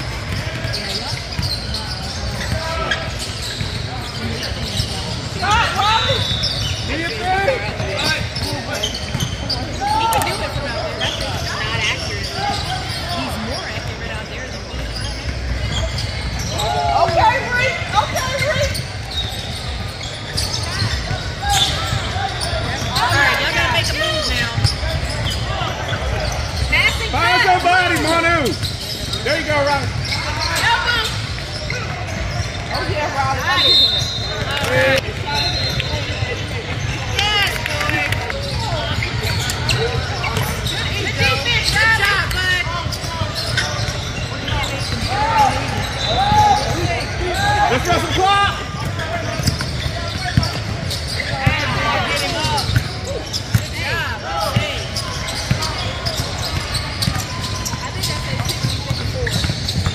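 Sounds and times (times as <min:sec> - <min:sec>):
shouts and chatter of people: 0:00.0 - 0:59.9.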